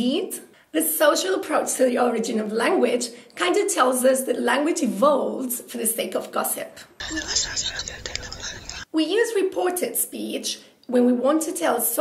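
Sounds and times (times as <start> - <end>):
people whispering: 7.0 - 8.9.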